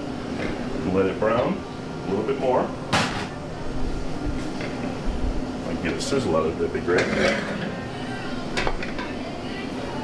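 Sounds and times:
commercial kitchen range noise: 0:00.0 - 0:10.0
metal pans and utensils clinking: 0:06.9 - 0:07.8, 0:08.5 - 0:09.2.

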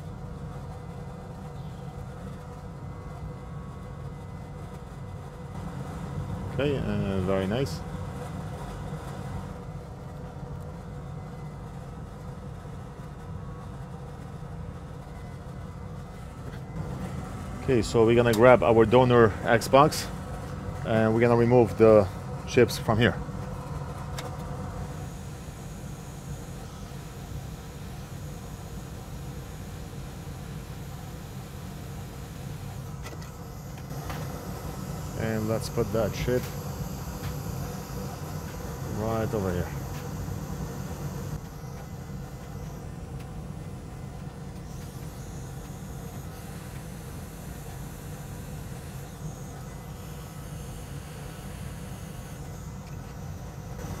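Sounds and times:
hot air station fan blowing: 0:00.0 - 0:54.0
bench machinery humming: 0:16.2 - 0:54.0.

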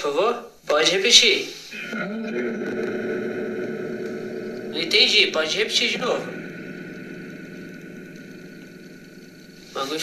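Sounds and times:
radio static hiss: 0:01.2 - 0:10.0.

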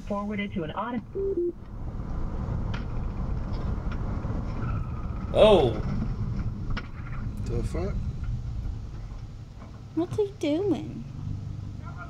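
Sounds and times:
car engine rumble and cabin noise: 0:00.0 - 0:12.0.

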